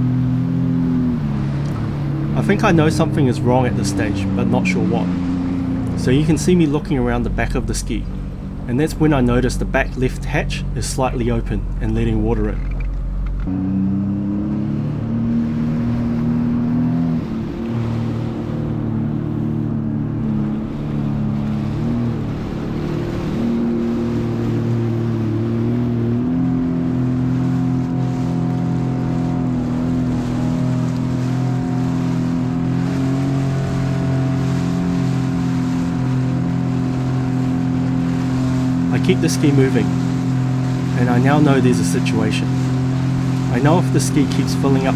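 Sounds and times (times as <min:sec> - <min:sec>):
jet ski engine running: 0:00.0 - 0:44.9
water rushing along hull: 0:00.0 - 0:44.9.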